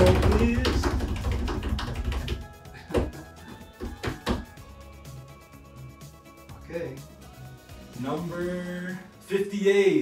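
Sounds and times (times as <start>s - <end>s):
drumroll of rapid taps: 0.0s - 2.5s
music: 0.0s - 10.0s.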